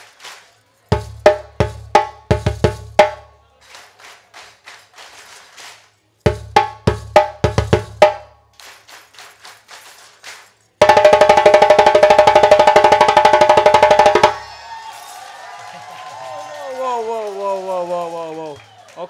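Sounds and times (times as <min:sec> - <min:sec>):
audience hand-clapping: 0:00.0 - 0:00.9, 0:03.6 - 0:06.2, 0:08.5 - 0:10.8, 0:14.2 - 0:19.0
fast drum roll: 0:00.9 - 0:03.2, 0:06.3 - 0:08.2, 0:10.8 - 0:14.6
djembe phrases: 0:00.9 - 0:03.4, 0:06.3 - 0:08.3, 0:10.8 - 0:14.4.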